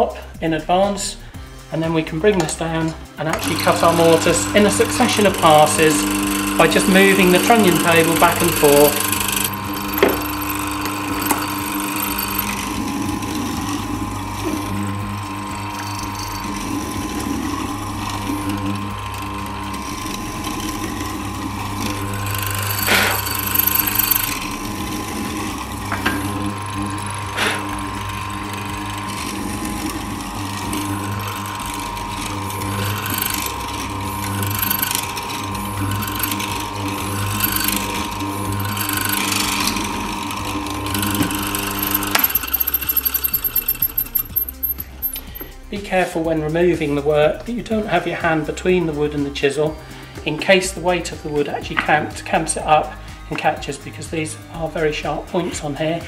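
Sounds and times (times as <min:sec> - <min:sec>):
morticer motor running: 0:01.2 - 0:53.4.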